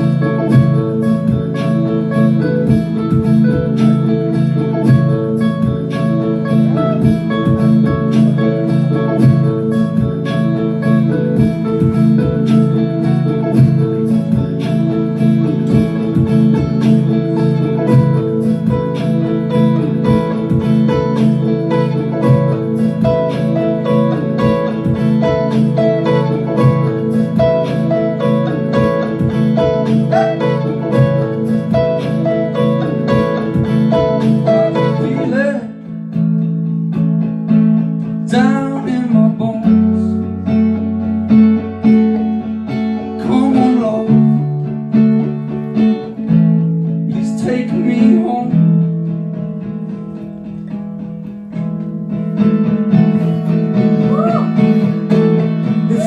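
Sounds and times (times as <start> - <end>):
looped guitar instrumental: 0.0 - 56.0.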